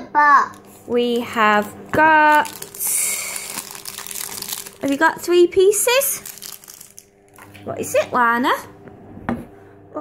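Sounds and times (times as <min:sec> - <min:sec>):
packaging wrapper crinkling: 0:00.5 - 0:00.9, 0:01.9 - 0:07.6.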